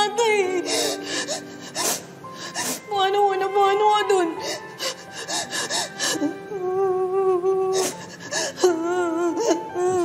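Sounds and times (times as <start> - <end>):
background music: 0.0 - 10.0
woman crying: 0.0 - 10.0
gasping sobbing breaths: 0.6 - 2.9, 4.4 - 6.4, 7.7 - 9.7.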